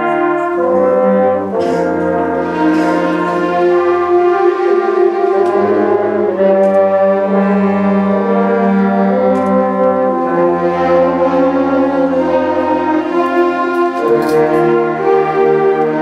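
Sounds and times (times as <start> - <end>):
concert band chords: 0.0 - 16.0.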